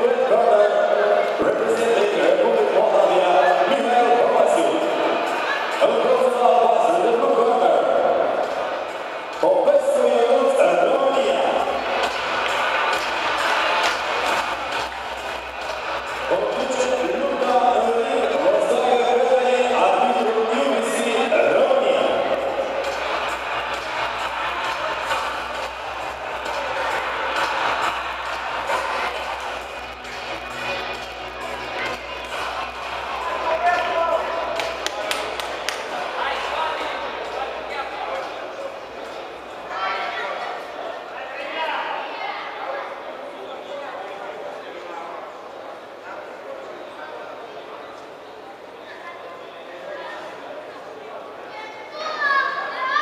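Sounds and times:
indistinct voices echoing: 0:00.0 - 0:46.4.

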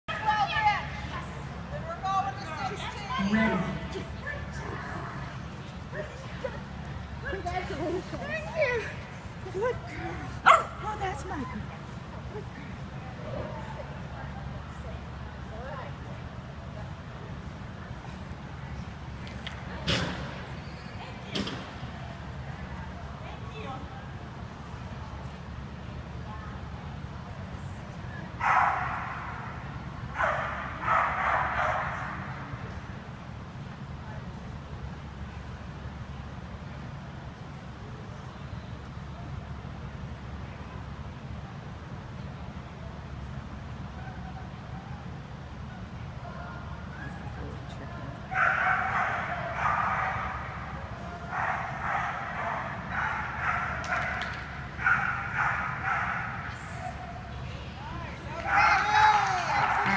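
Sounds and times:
dog barking in echoing hall: 0:28.4 - 0:29.4, 0:30.2 - 0:32.3, 0:48.3 - 0:50.7, 0:51.3 - 0:56.5.

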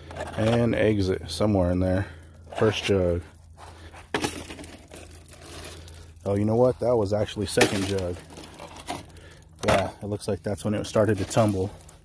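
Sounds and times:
plastic jugs crinkling and knocking: 0:00.0 - 0:01.2, 0:02.4 - 0:12.0.

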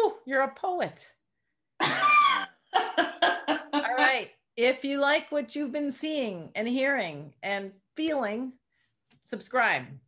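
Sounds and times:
woman laughing: 0:01.8 - 0:04.2.

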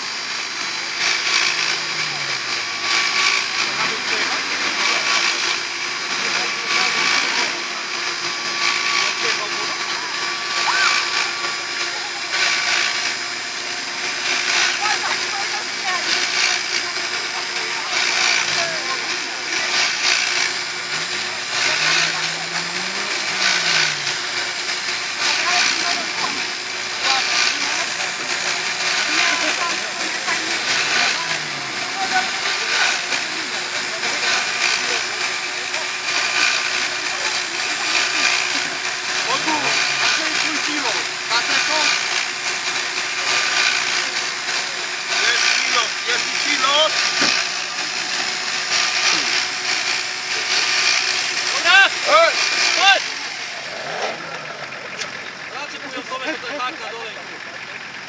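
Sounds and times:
motor whirring: 0:00.0 - 0:58.0
people talking: 0:01.8 - 0:13.0, 0:14.3 - 0:42.3, 0:42.9 - 0:49.5, 0:50.1 - 0:58.0.

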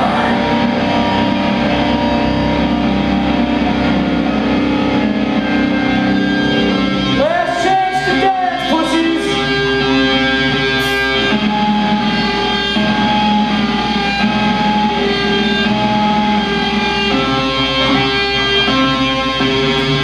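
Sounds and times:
electric guitars playing ringing chords: 0:00.0 - 0:20.0.

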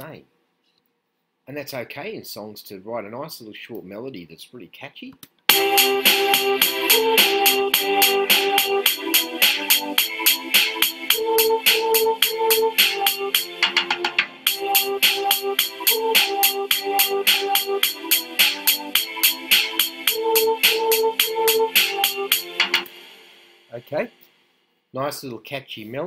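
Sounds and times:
held violin chords: 0:05.5 - 0:10.2
synthesized voice melody: 0:05.5 - 0:22.9
drum kit steady rhythm: 0:05.5 - 0:24.4.

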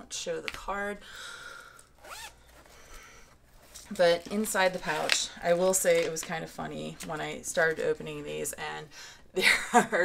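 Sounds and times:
zipper of fabric pouch opening: 0:02.0 - 0:02.7.

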